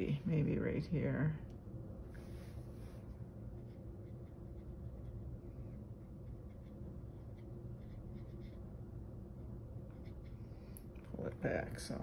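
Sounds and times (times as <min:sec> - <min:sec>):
steady low hum: 0:00.0 - 0:12.0
brush scratching on paper: 0:02.2 - 0:08.8, 0:09.9 - 0:10.6.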